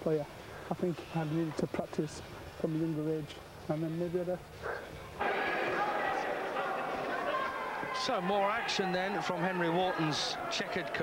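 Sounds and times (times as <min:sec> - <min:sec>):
crowd din of many voices: 0:04.6 - 0:11.0.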